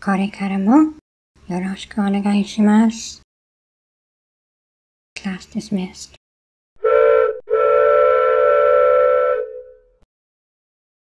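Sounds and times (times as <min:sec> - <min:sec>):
whistle-like steady chord: 0:06.8 - 0:10.0.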